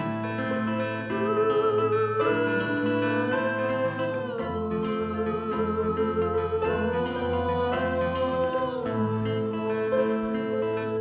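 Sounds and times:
acoustic guitars and mandolin: 0.0 - 11.0.

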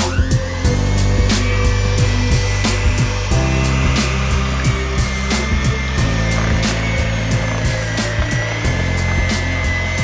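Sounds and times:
background music with a beat: 0.0 - 10.0
electric hand mixer whine: 0.0 - 10.0.

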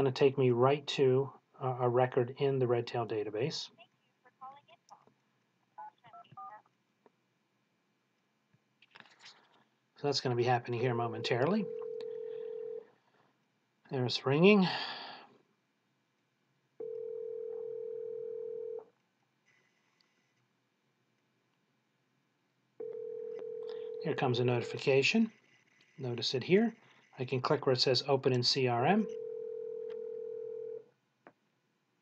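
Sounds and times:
telephone ringback tone: 11.2 - 12.9, 16.8 - 18.8, 22.8 - 24.3, 29.1 - 30.8.

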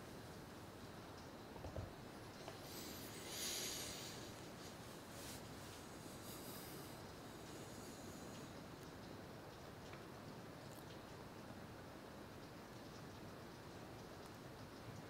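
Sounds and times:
faint room hiss: 0.0 - 15.0.

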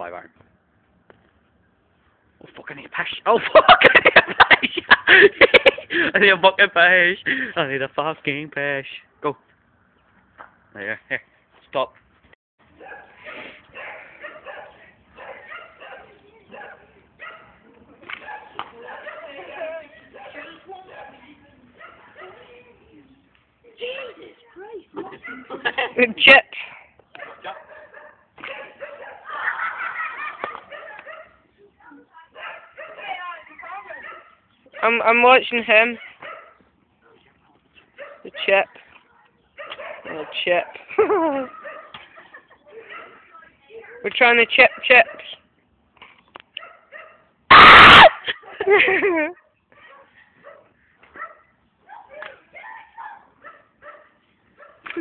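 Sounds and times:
men laughing loudly: 3.3 - 6.3, 25.0 - 26.2, 29.2 - 30.9, 40.9 - 42.8, 47.8 - 49.4
dog barking: 12.8 - 17.6, 18.2 - 22.5, 25.2 - 25.7, 27.2 - 29.4, 30.4 - 33.3, 33.9 - 35.0, 36.0 - 37.2, 38.0 - 38.4, 39.0 - 42.0, 42.8 - 43.2, 44.7 - 45.4, 46.6 - 48.7, 49.4 - 54.9.

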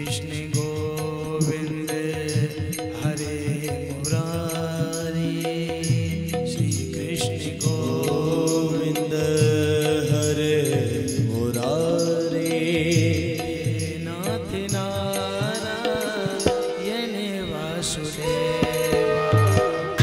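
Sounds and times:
man chanting into microphone: 0.0 - 19.6.

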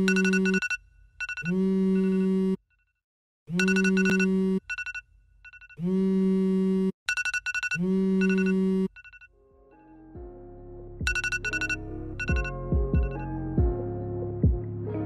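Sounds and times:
phone alarm ringing: 0.0 - 2.5, 3.5 - 5.8, 7.1 - 9.3, 11.1 - 13.2.

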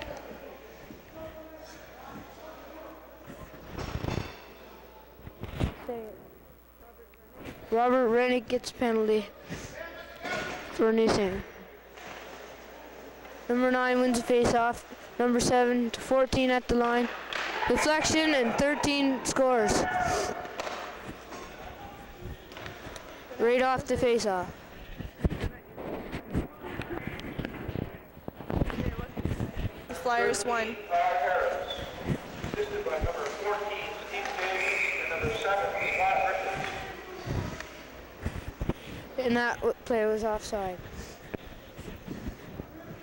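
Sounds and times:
distant voices echoing in arena: 0.0 - 43.0.

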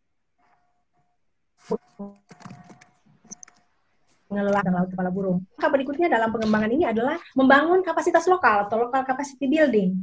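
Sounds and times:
keyboard typing: 1.6 - 4.8.

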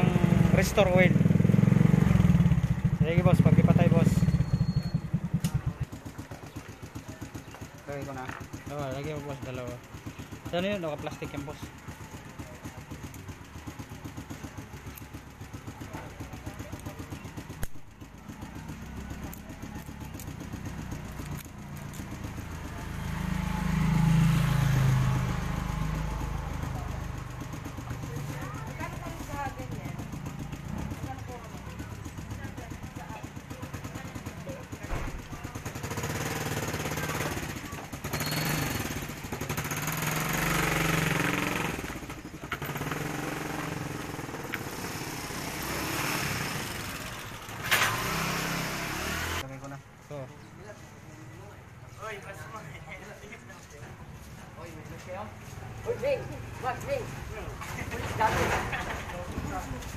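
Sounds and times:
small motorcycle engine idling: 0.0 - 59.9.

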